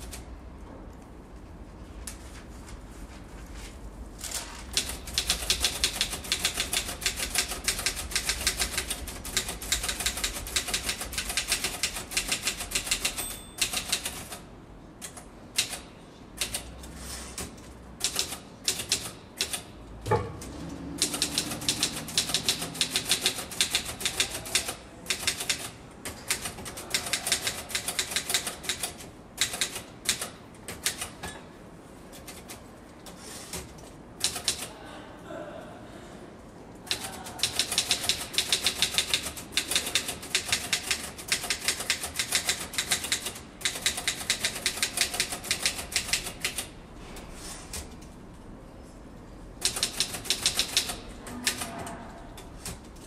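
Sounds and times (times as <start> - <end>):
typing on a keyboard: 4.7 - 14.4, 15.0 - 16.8, 17.4 - 19.7, 21.0 - 31.2, 32.1 - 34.7, 36.9 - 46.7, 49.6 - 52.0
heavy thump: 20.1 - 20.4.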